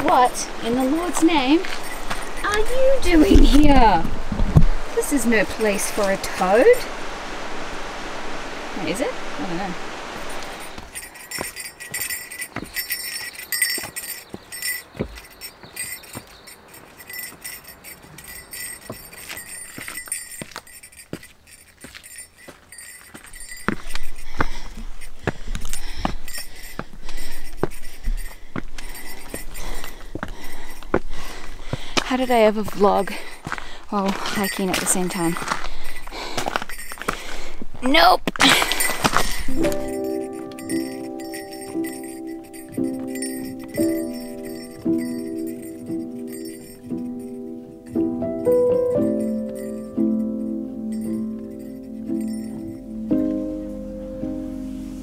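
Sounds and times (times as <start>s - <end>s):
clothing and gear rustling: 0.0s - 4.0s, 10.2s - 49.9s
small bell jingling: 0.0s - 4.0s, 10.3s - 53.3s
dull footsteps: 0.0s - 6.9s, 10.2s - 54.5s
woman speaking and laughing: 2.4s - 4.1s, 37.8s - 38.9s.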